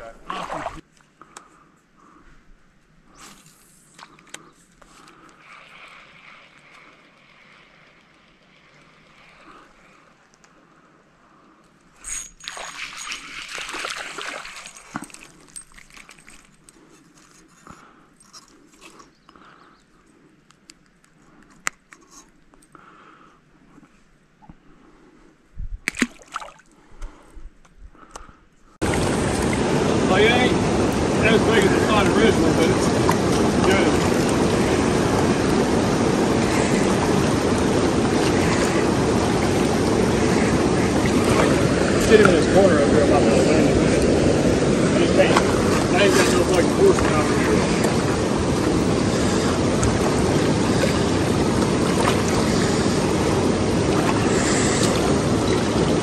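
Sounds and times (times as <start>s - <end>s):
rushing water from spillway: 12.5s - 15.1s, 28.8s - 56.0s.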